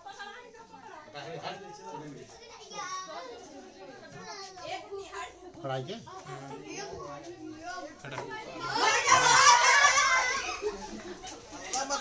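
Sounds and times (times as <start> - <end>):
children's voices: 2.3 - 5.5, 6.1 - 12.0.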